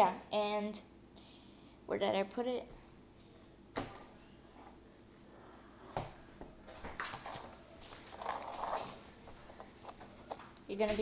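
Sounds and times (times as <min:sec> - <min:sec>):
rustling and handling noises: 0:06.7 - 0:11.0.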